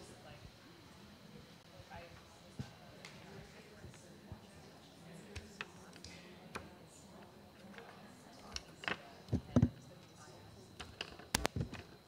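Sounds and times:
quiet talk: 0.0 - 12.0
laptops and cables clicking: 10.8 - 11.9.

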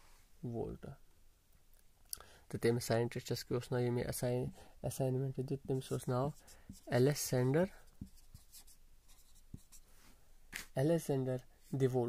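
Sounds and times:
marker pen writing on whiteboard: 5.7 - 9.9.

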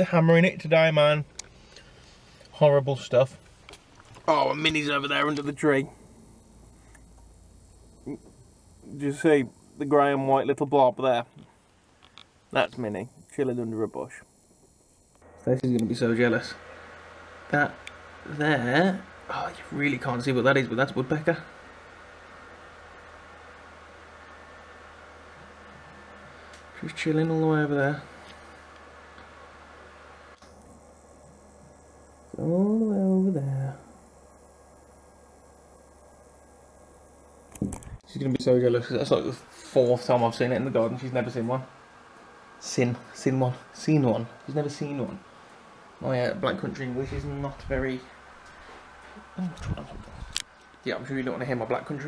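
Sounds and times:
faint high whine: 0.0 - 52.0
low hum: 0.0 - 52.0
faint ticks: 11.3 - 13.4.

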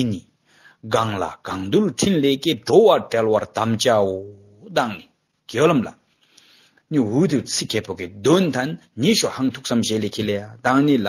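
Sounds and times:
man speaking: 0.0 - 6.0, 6.9 - 11.0.

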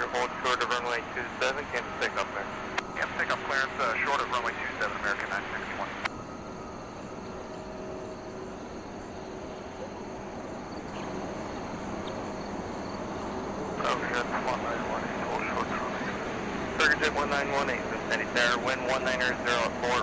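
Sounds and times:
distant jet engines running: 0.0 - 20.0.

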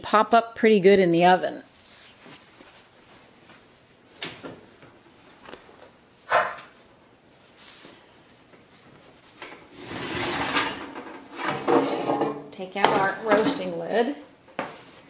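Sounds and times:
oven rack sliding with scraping rattle: 9.7 - 12.4.

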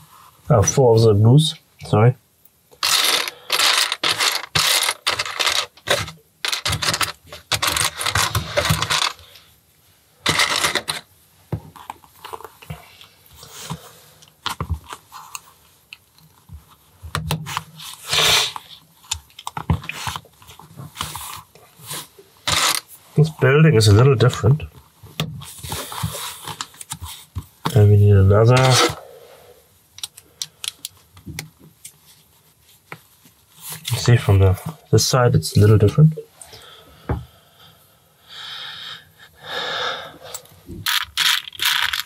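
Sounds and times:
plastic bricks clattering: 2.8 - 9.2, 10.2 - 11.1, 40.9 - 42.0
plastic pieces clicking: 2.8 - 9.2, 10.3 - 11.0, 40.9 - 42.0
rustling: 2.8 - 9.5.

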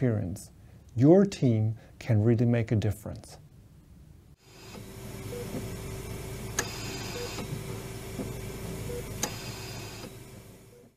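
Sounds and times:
equipment hum: 3.4 - 10.9
click: 9.2 - 9.4.

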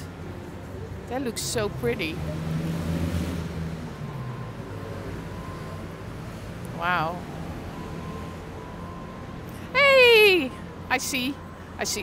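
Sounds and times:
busy street noise: 0.0 - 12.0
vehicle engine humming: 0.0 - 12.0.

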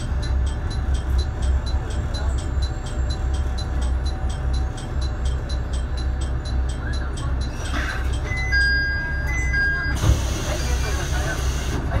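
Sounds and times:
diesel railcar engine idling: 0.0 - 12.0.

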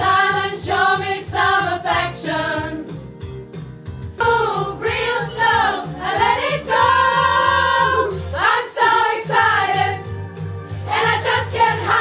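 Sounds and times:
pop backing music: 0.0 - 12.0.

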